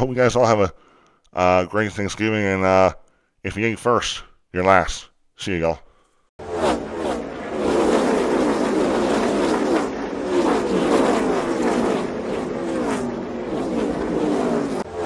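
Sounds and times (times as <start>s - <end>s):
race car engines passing: 6.4s - 15.0s.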